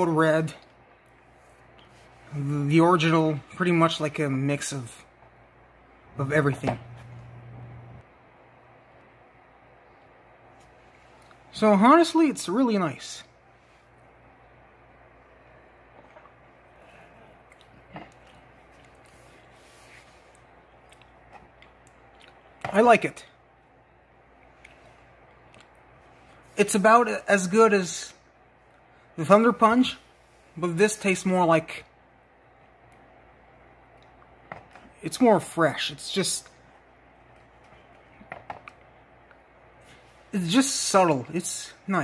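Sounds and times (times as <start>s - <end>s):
faint room hum: 0.0s - 42.0s.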